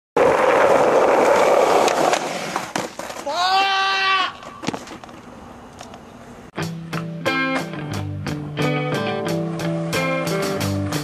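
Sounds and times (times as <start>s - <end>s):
skateboard clacks: 0.2s - 3.7s
skateboard wheels rolling on concrete: 0.2s - 11.0s
person yelling: 3.2s - 4.4s.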